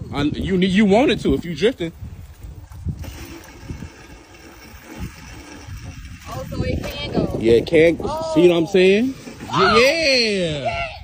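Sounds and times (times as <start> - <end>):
kart wheels rumbling on asphalt: 0.0 - 10.4.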